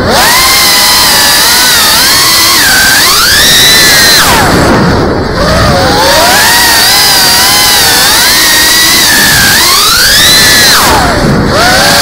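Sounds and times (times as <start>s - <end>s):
drone motors whining: 0.0s - 12.0s
propeller rush: 4.2s - 8.3s.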